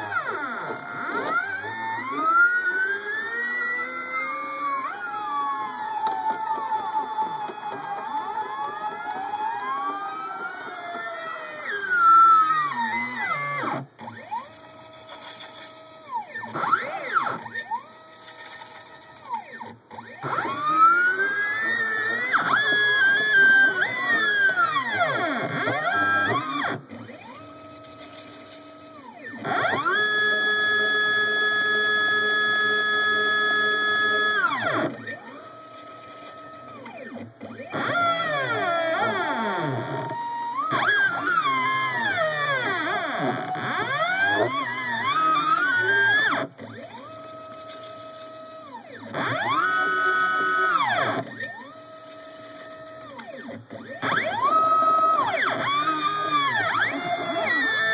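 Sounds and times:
stepper motors whining: 0.0s - 57.9s.

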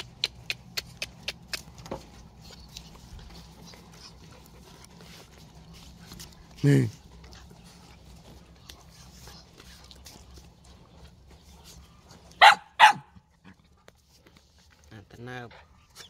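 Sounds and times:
dog barking: 12.4s - 13.2s.

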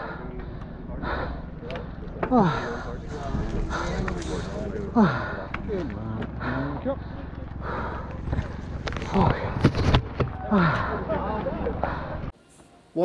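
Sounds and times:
wind rumble: 0.0s - 12.3s
bike rattling and knocking: 1.7s - 12.3s.

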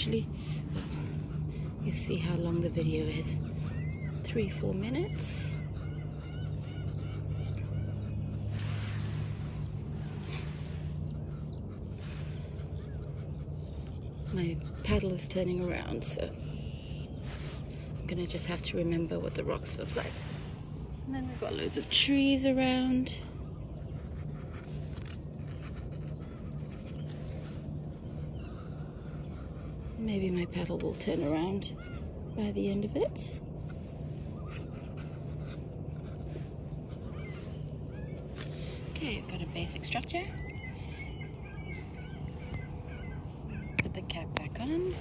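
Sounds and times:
faint hum: 0.0s - 45.0s
low engine drone: 0.0s - 45.0s
low outdoor rumble: 0.0s - 45.0s.

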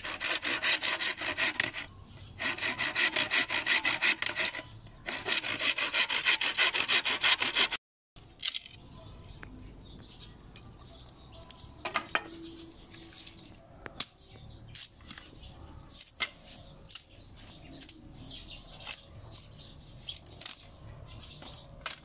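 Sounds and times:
hand saw cutting bamboo: 0.0s - 7.8s.

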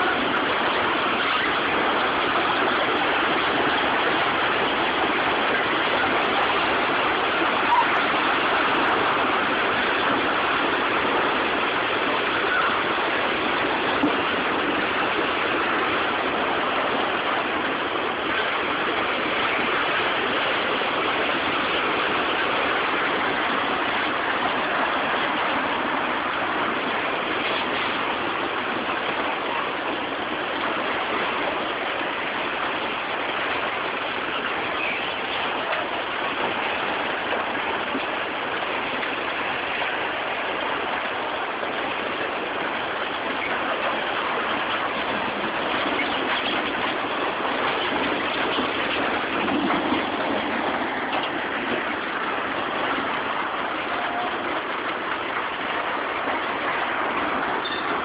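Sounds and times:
floodwater rushing with debris: 0.0s - 58.0s.

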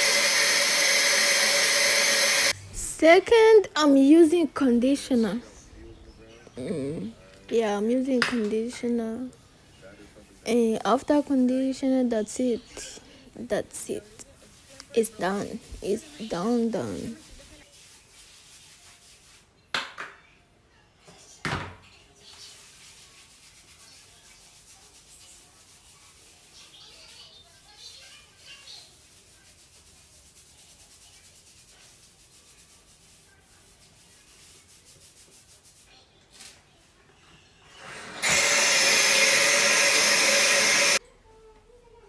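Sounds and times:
bathtub faucet running: 0.0s - 2.6s, 38.2s - 41.0s
hands rubbing wet hair: 14.2s - 19.5s, 29.0s - 35.9s.

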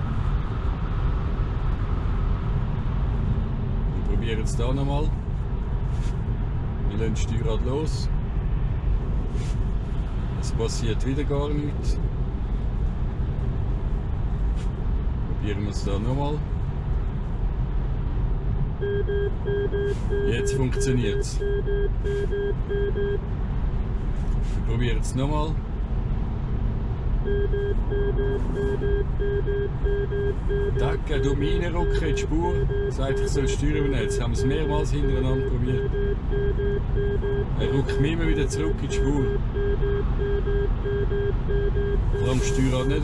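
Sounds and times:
tyre and road noise in car: 11.6s - 43.0s.

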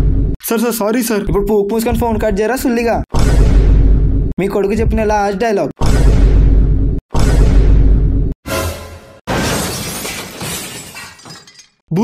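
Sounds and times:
glass shattering: 8.5s - 11.8s.

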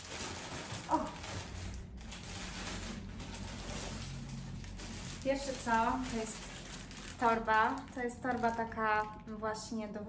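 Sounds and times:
plastic packaging crinkling: 0.0s - 9.7s.

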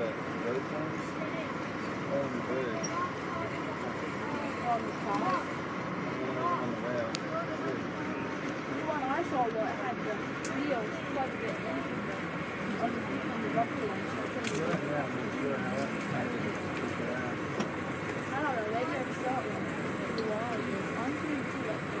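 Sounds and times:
indistinct conversation: 0.0s - 22.0s
train running on track: 0.0s - 22.0s.

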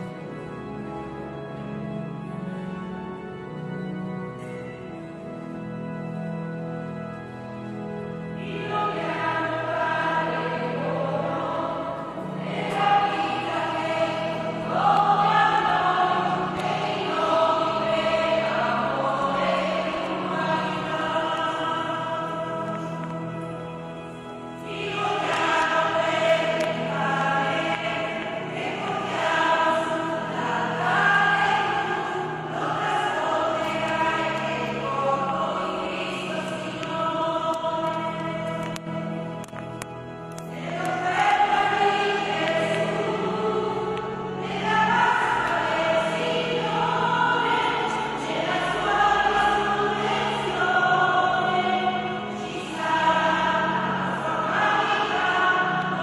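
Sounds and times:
choir singing a hymn: 0.0s - 56.0s.

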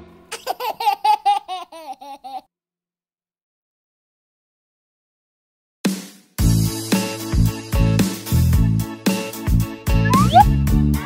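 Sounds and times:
young child laughing: 0.3s - 2.5s.

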